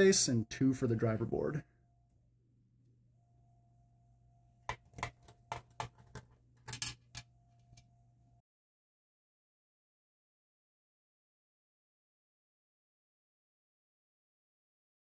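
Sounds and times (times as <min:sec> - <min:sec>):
faint steady hum: 0:00.0 - 0:08.4.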